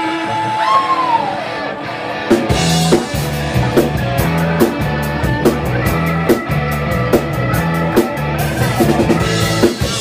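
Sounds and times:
blues rock band playing: 0.0 - 10.0.

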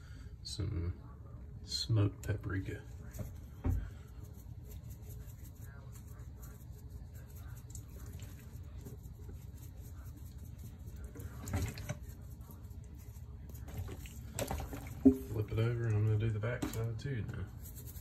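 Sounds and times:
spice shaker shaking: 4.2 - 14.2
turkey handled against sink: 11.1 - 12.2.

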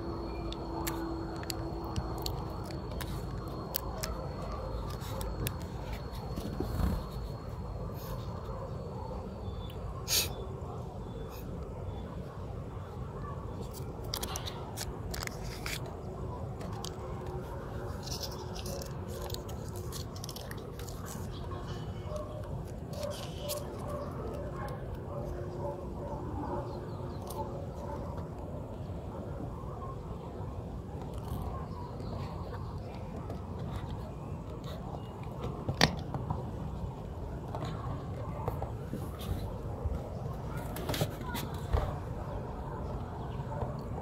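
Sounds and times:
tape and paper crackling: 0.1 - 7.5, 13.6 - 25.4
foil tape crinkling: 17.9 - 21.6.

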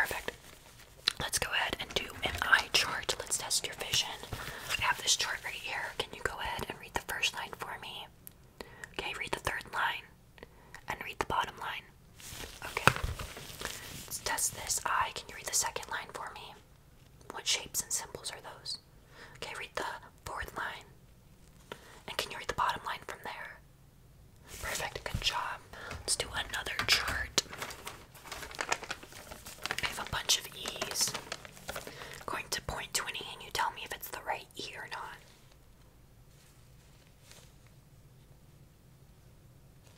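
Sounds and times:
woman whispering: 0.0 - 0.4, 1.1 - 8.2, 8.9 - 10.2, 10.8 - 11.9, 12.6 - 13.0, 14.1 - 16.7, 17.3 - 21.0, 22.1 - 23.6, 24.5 - 27.6, 29.7 - 31.3, 32.2 - 35.4.

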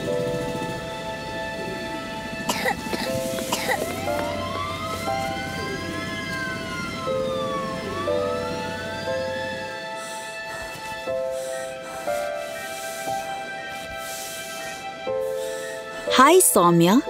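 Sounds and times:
siren wailing: 0.0 - 17.0
soft background music: 0.0 - 17.0
child coughing: 2.5 - 4.2.

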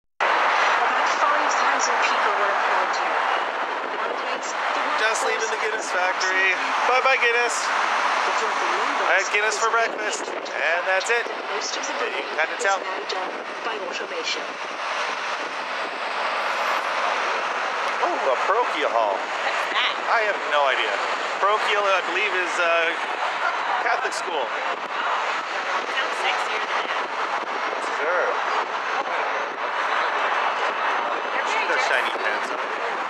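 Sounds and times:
wind rushing: 0.2 - 22.1
bus road noise: 0.2 - 33.0
traffic rushing: 0.2 - 33.0.

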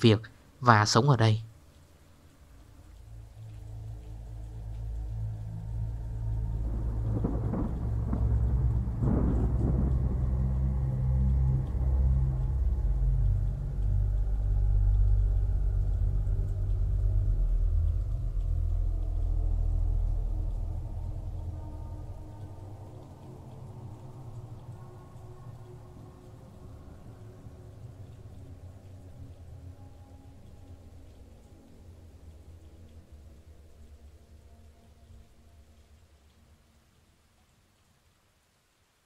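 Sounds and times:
low drone: 2.2 - 36.6
deep thunder-like rumbling: 5.2 - 29.6.

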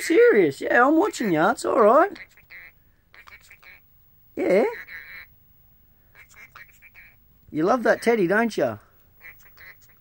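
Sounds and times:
parrot chattering calls: 1.0 - 5.4, 6.1 - 7.2, 9.2 - 10.0.

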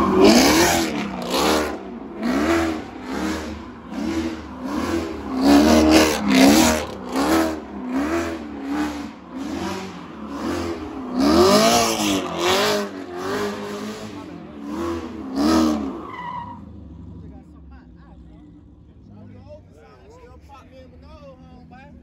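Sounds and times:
tires screeching: 0.0 - 19.4
car engine revving: 0.0 - 19.6.

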